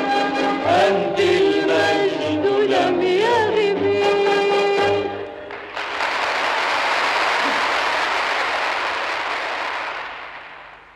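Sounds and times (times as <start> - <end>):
audience applause: 5.5 - 10.9.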